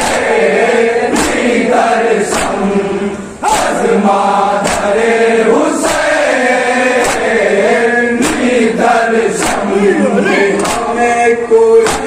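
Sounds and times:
men chanting in unison: 0.0s - 12.0s
hands slapping chests: 1.1s - 1.4s, 4.6s - 4.9s, 9.4s - 9.7s, 10.6s - 10.9s.

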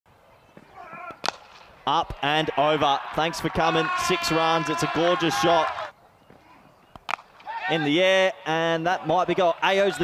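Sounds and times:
cricket bat striking ball: 0.9s - 1.6s, 7.0s - 7.4s.

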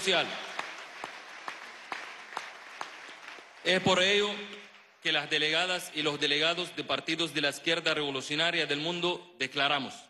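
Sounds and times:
audience applause: 0.0s - 5.0s.

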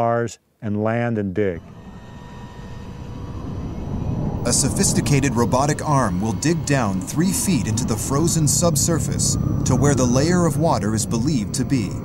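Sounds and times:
faint high held tones: 1.5s - 12.0s
low rumbling drone: 1.6s - 12.0s.

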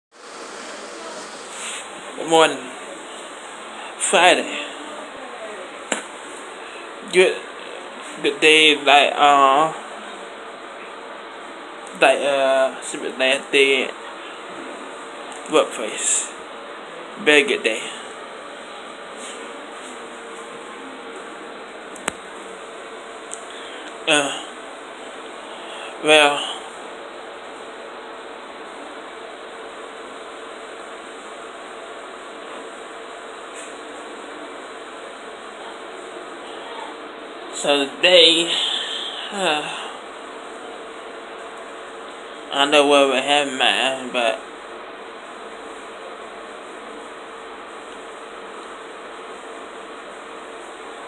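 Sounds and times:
faint hum: 0.1s - 51.0s
room background hiss: 0.1s - 51.0s.

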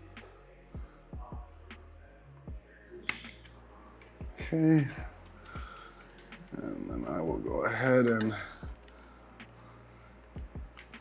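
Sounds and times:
faint background music: 0.0s - 11.0s
wire cutters snipping: 3.0s - 4.2s, 10.2s - 11.0s.

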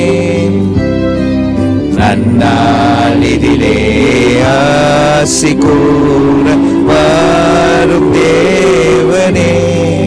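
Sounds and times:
man singing into a microphone: 0.0s - 0.8s, 1.9s - 10.0s
instrumental backing: 0.0s - 10.0s.

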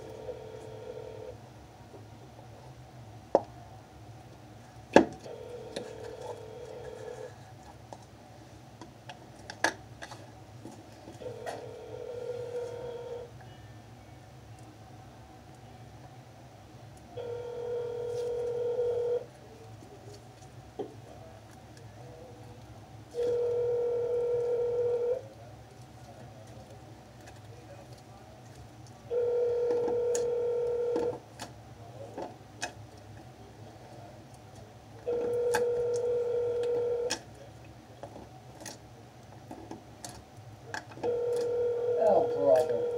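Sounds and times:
telephone ringback tone: 0.0s - 1.3s, 11.2s - 13.3s, 17.2s - 19.3s, 23.1s - 25.2s, 29.1s - 31.2s, 35.1s - 37.1s, 41.0s - 42.9s.

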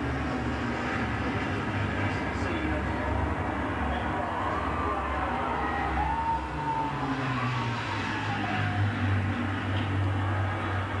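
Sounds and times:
propeller aircraft droning: 0.0s - 11.0s.

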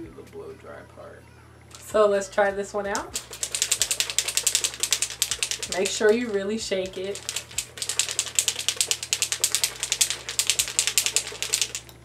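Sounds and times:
bottle being shaken rattling: 1.7s - 2.0s, 2.8s - 11.9s.

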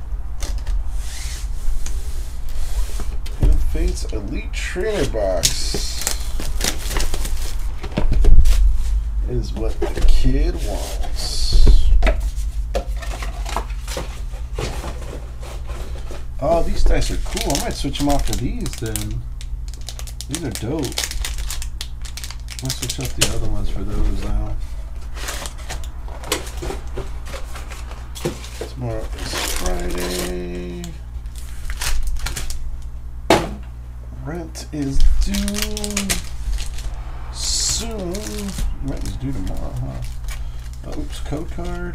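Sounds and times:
steady low hum: 0.0s - 41.9s
cardboard inserts clicking and scraping: 3.0s - 8.6s, 12.9s - 19.2s, 25.0s - 32.6s, 34.8s - 36.8s
plastic shrink wrap crinkling: 3.8s - 8.6s, 12.2s - 33.0s, 34.8s - 41.9s.

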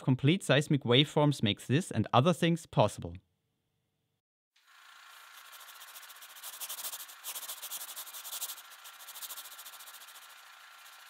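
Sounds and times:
pen scratching on paper: 5.3s - 11.0s.

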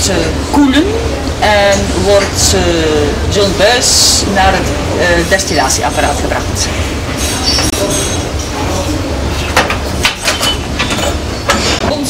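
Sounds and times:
glassware clinking: 7.1s - 8.9s, 9.5s - 11.8s
high squeak: 7.2s - 8.3s.

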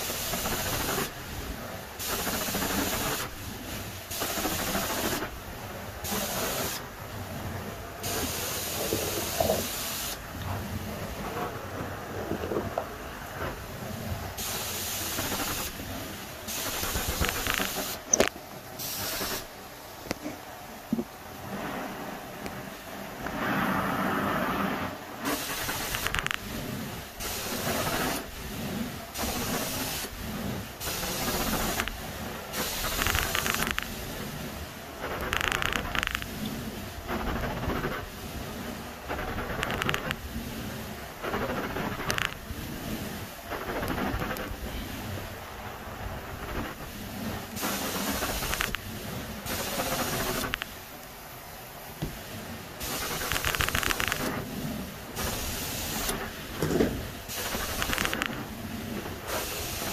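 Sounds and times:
carpet extraction wand hissing: 0.0s - 1.4s, 2.0s - 5.3s, 6.0s - 6.9s, 14.4s - 19.5s, 25.2s - 28.4s, 29.1s - 34.4s, 47.5s - 50.8s, 52.8s - 54.4s, 55.2s - 59.9s.

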